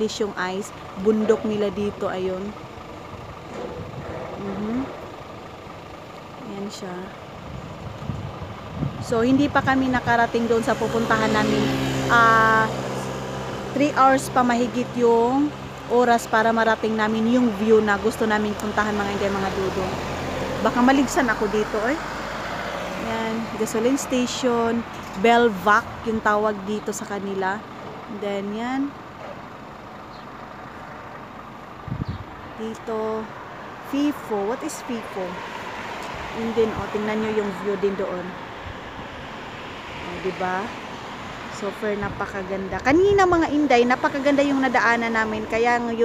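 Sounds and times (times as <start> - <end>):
road traffic hum: 0.0 - 46.0
vehicle engine rumbling: 0.0 - 46.0.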